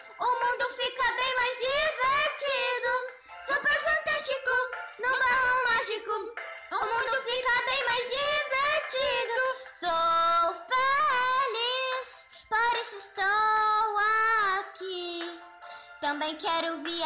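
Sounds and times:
musical backing: 0.0s - 13.8s
child singing pop song: 0.0s - 17.0s.

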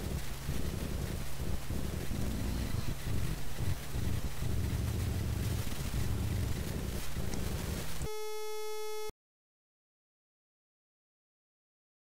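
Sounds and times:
wind rumbling on microphone: 0.0s - 8.0s
buzzy single-pitch tone: 8.0s - 9.1s.

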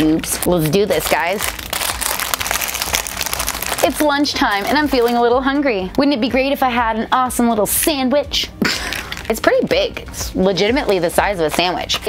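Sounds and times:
plastic bag crinkling: 0.1s - 5.2s, 8.8s - 9.3s.

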